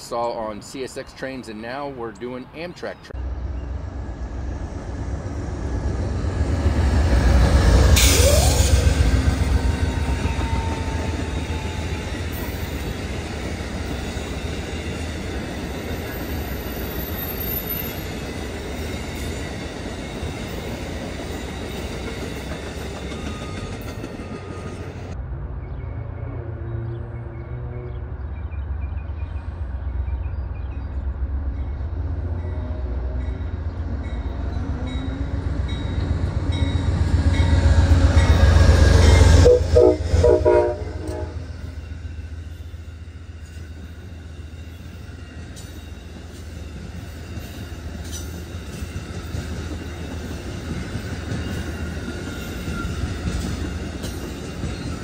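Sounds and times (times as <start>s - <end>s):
train rolling past: 0.0s - 55.0s
train horn blasts: 39.0s - 41.7s.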